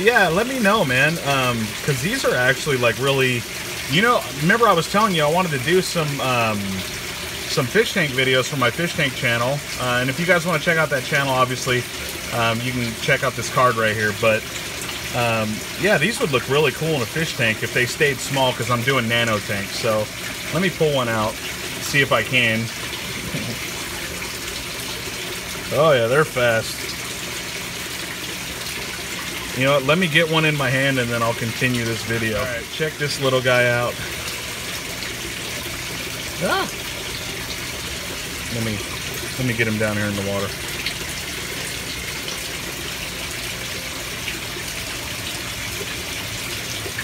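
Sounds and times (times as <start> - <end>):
water rushing in tank: 0.0 - 47.0.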